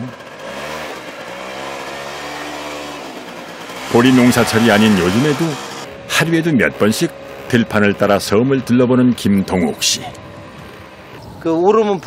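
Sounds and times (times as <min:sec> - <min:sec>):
scooter engine revving: 0:00.0 - 0:11.2.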